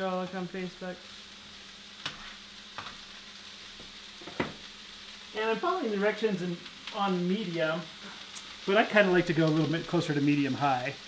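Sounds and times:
food sizzling in a skillet: 0:00.0 - 0:11.0.

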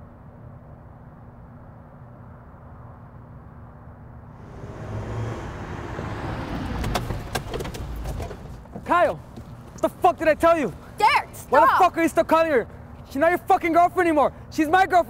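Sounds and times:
car engine and tyre noise: 0:04.4 - 0:11.6.

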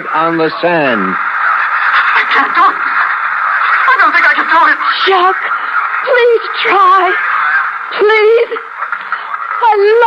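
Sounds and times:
woman speaking: 0:02.2 - 0:03.0, 0:03.8 - 0:07.2, 0:07.9 - 0:08.7, 0:09.6 - 0:10.0.

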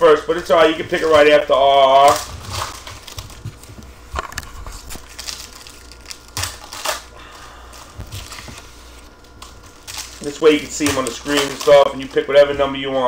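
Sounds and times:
foil wrappers crinkling: 0:00.0 - 0:13.0
steady low hum: 0:00.0 - 0:13.0.

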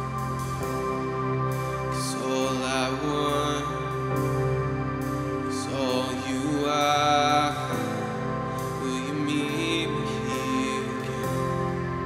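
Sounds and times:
band playing slow song: 0:00.0 - 0:12.0
person singing: 0:00.0 - 0:12.0.

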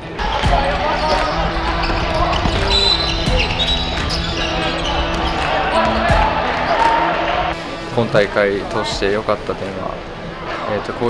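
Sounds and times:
court noise: 0:00.0 - 0:11.0
players' voices: 0:00.0 - 0:11.0.

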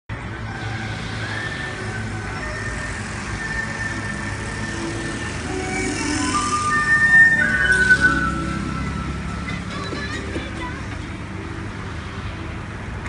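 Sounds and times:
faint higher tones: 0:03.9 - 0:09.5.

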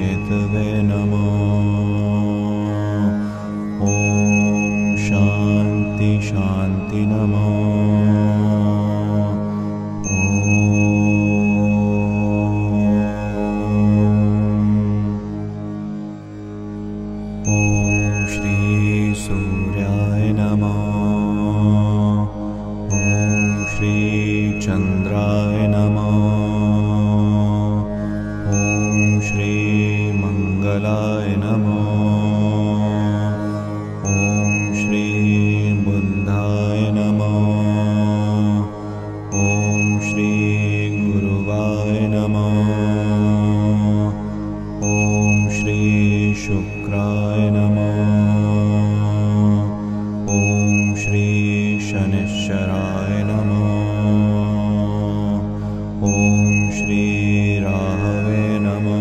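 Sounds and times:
mantra chanting: 0:00.0 - 0:15.4, 0:17.4 - 0:59.0
steady drone: 0:00.0 - 0:59.0
high ringing tone: 0:03.8 - 0:08.5, 0:10.0 - 0:14.2, 0:17.4 - 0:22.1, 0:22.9 - 0:27.3, 0:28.5 - 0:32.9, 0:34.0 - 0:38.4, 0:39.3 - 0:44.0, 0:44.8 - 0:49.5, 0:50.3 - 0:54.5, 0:56.0 - 0:59.0.

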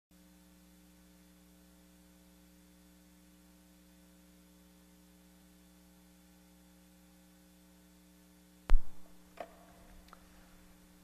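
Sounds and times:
faint electrical mains hum: 0:00.2 - 0:11.0.

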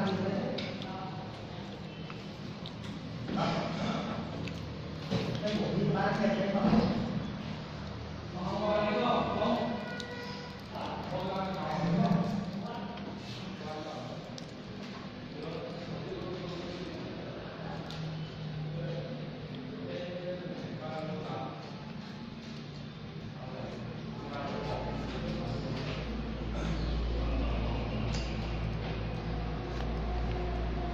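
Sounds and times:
people talking: 0:08.4 - 0:18.1, 0:23.4 - 0:30.9.

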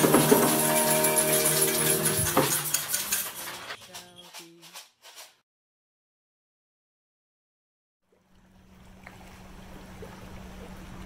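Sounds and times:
shakers and tambourines rattling: 0:00.0 - 0:05.4.

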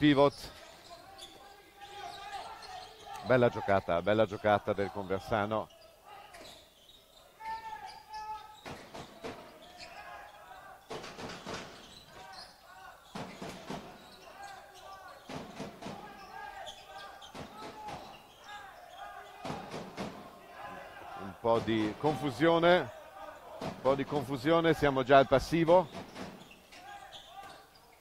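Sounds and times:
players shouting: 0:00.7 - 0:06.5, 0:07.3 - 0:27.7.

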